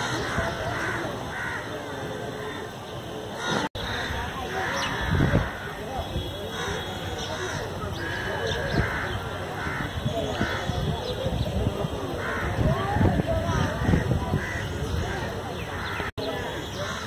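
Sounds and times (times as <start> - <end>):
birds cawing: 0.0 - 2.8, 3.4 - 5.9, 6.5 - 10.9, 12.2 - 12.7, 13.5 - 17.0
people talking: 0.0 - 17.0.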